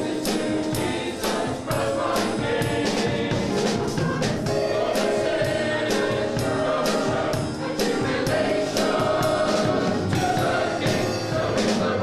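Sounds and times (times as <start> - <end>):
mixed choir singing: 0.0 - 12.0
regular short percussive strikes: 0.0 - 12.0.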